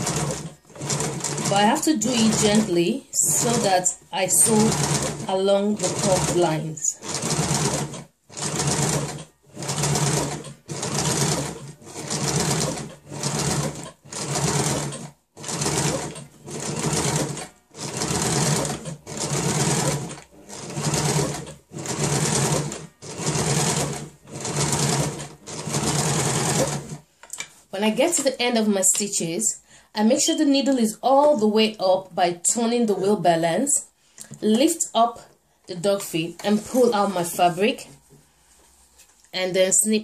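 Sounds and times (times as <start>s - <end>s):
sewing machine stitching: 0.0s - 27.0s.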